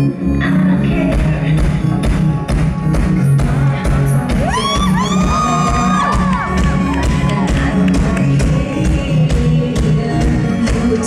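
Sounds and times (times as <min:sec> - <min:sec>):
live pop band playing: 0:00.6 - 0:11.0
crowd screaming: 0:04.4 - 0:07.7.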